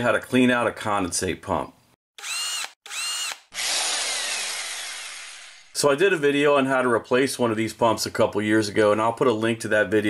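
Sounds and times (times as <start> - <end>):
power tool motor whirring: 2.2 - 5.8.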